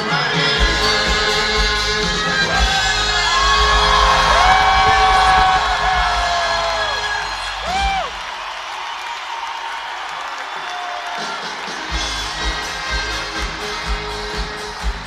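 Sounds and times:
live schlager band music: 0.0s - 8.3s, 11.0s - 15.0s
crowd whooping and singing along: 0.0s - 15.0s.

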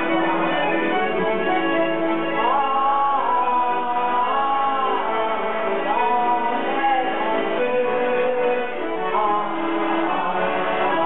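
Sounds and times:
accordion accompaniment: 0.0s - 11.0s.

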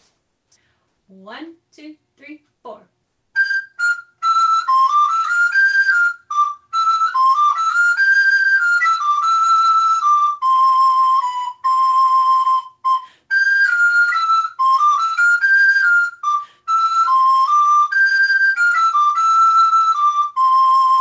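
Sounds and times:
solo recorder melody: 3.4s - 21.0s.

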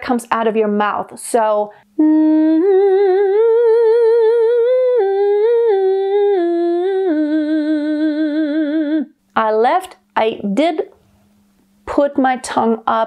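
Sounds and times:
woman humming with vibrato: 2.0s - 9.1s.

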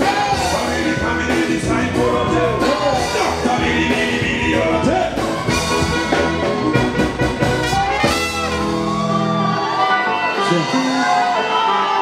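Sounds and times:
live band music: 0.0s - 12.0s
trumpet and saxophone lead notes: 0.0s - 12.0s.

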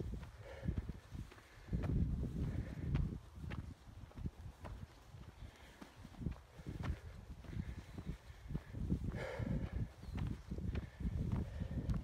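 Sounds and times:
faint wind: 0.0s - 12.0s
footsteps on gravel: 0.0s - 12.0s.

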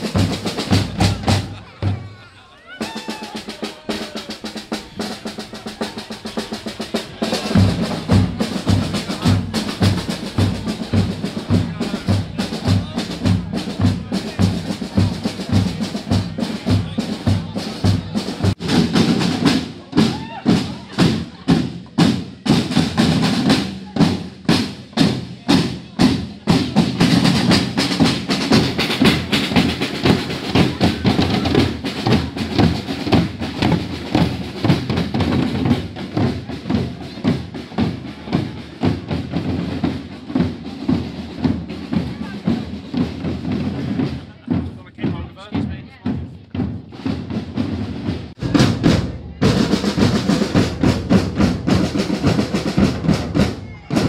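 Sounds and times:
crowd voices: 0.0s - 54.0s
street drum band playing: 0.0s - 54.0s.

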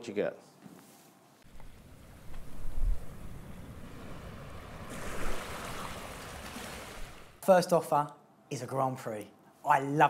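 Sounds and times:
ocean waves rushing: 1.6s - 7.4s.

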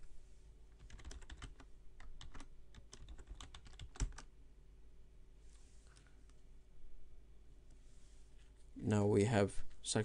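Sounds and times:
computer keyboard typing: 0.8s - 4.3s.

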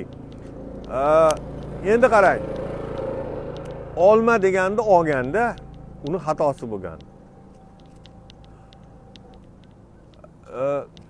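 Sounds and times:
street traffic: 0.0s - 11.0s
man's drawn-out vocal hesitation: 10.2s - 11.0s.

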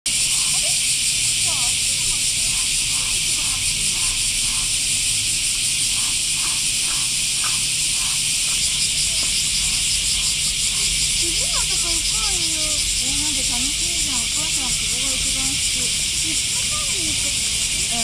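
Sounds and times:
cicadas chorus: 0.1s - 18.0s
people's voices: 0.2s - 5.2s, 5.8s - 18.0s.

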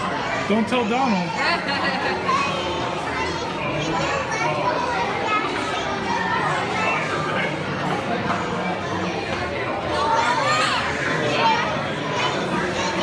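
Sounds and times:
chatter of many voices: 0.0s - 13.0s.

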